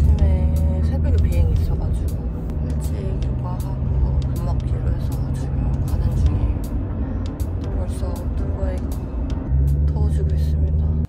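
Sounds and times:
woman speaking: 0.0 - 6.7, 7.6 - 9.0, 9.8 - 11.0
car cabin rumble: 0.0 - 11.0.

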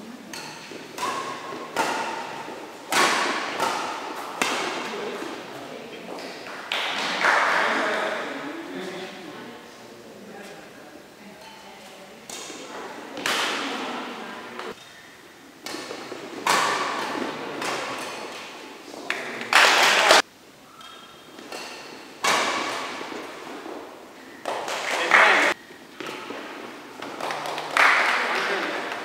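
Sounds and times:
players' voices: 0.0 - 14.8, 24.6 - 25.6
rackets hitting shuttlecock: 0.3 - 5.5, 6.2 - 8.4, 12.2 - 15.0, 15.6 - 20.2, 20.8 - 29.0.

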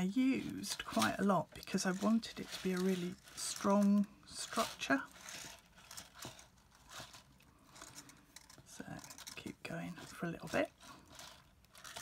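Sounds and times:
wire rustling: 0.0 - 12.0.

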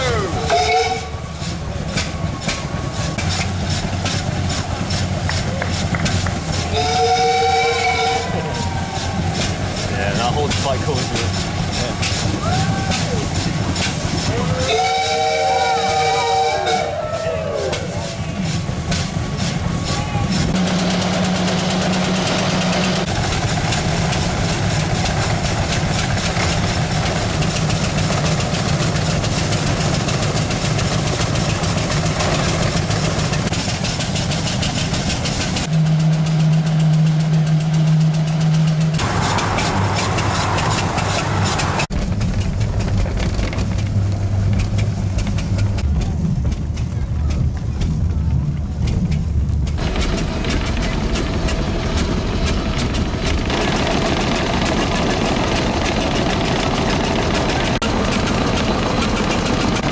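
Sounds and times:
car engine running: 25.3 - 59.9.

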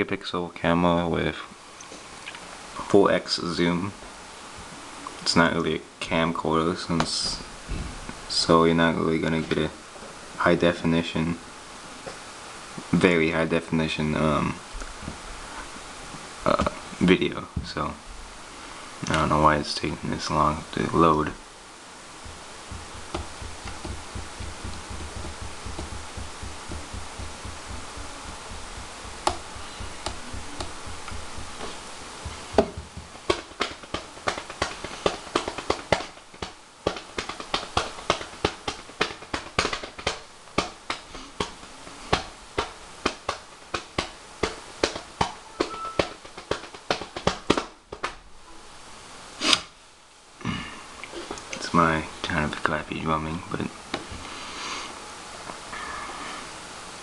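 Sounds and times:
faint low hum: 0.0 - 57.0
fingers drumming on hard surface: 22.2 - 48.1.

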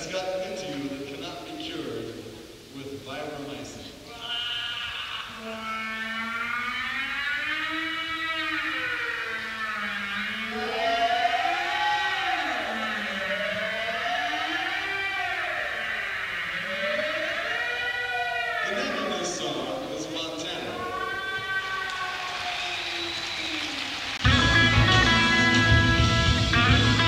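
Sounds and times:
live rock band: 24.2 - 27.0.

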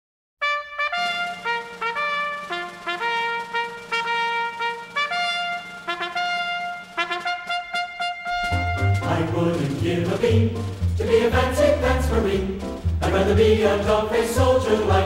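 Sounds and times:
military brass band playing march: 0.4 - 15.0
trumpet melody: 0.4 - 15.0.

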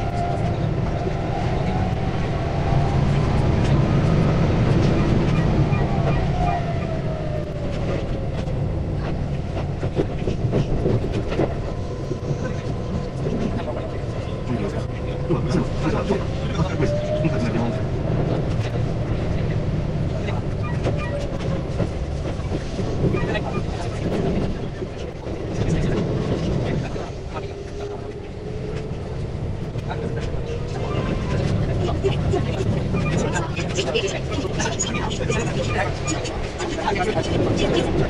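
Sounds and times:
train wheels rumbling on track: 0.0 - 38.0.

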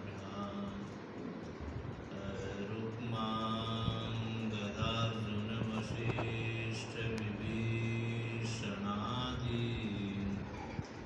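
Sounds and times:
men chanting a hymn: 2.1 - 10.8.

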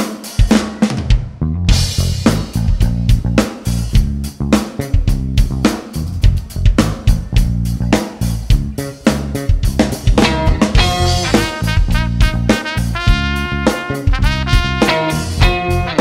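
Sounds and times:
live band playing: 0.0 - 16.0
horn line: 10.2 - 16.0.

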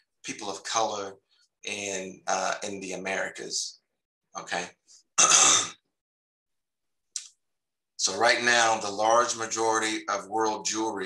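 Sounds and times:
man clearing his throat: 5.2 - 5.8.

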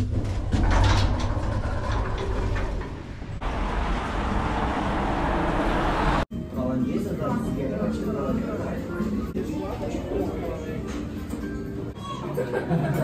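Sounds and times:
lift rumbling and rattling: 0.0 - 6.3.

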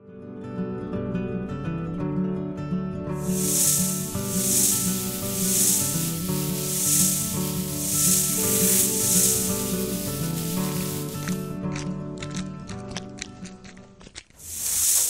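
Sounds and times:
background music: 0.2 - 14.2
cartoon snake hiss: 3.2 - 11.4, 14.4 - 15.0.

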